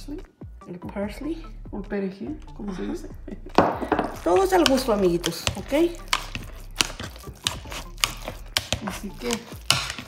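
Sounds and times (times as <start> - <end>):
potato masher knocking against bowl: 3.9 - 10.0.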